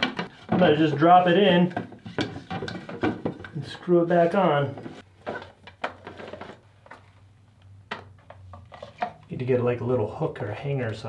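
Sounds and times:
plastic scraping: 0.0 - 7.1.

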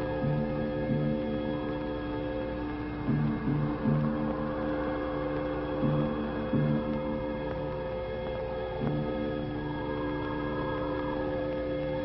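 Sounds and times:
dramatic background score: 0.0 - 12.0.

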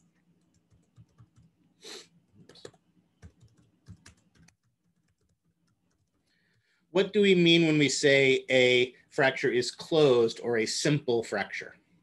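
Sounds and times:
faint keyboard typing: 0.0 - 1.7, 2.3 - 6.8.

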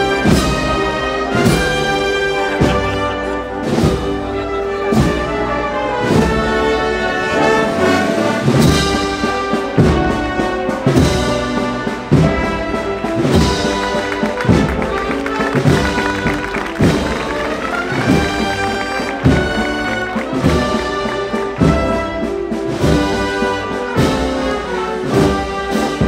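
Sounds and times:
brass band march: 0.0 - 26.0
steady drum strokes: 7.8 - 26.0.

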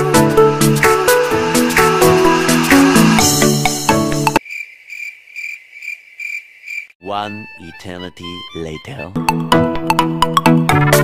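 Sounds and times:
upbeat electronic music: 0.0 - 4.4, 7.0 - 11.0
crickets chirping: 4.4 - 7.0.

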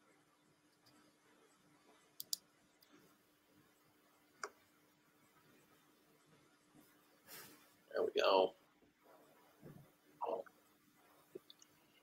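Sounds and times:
faint steady hum: 0.0 - 12.0
computer mouse clicks: 2.2 - 2.9.

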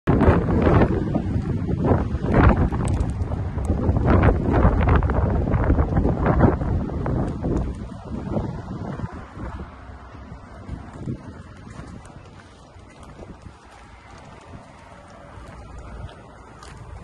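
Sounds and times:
wind buffeting microphone: 0.1 - 17.0.

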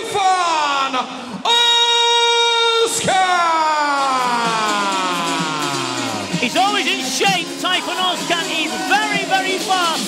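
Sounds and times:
announcer shouting over pa: 0.0 - 10.0.

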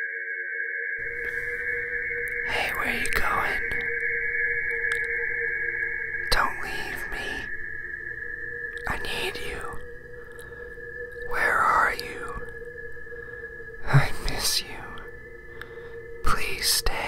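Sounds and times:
two-tone held drone: 0.0 - 17.0
ghostly whispering voices: 1.0 - 17.0.

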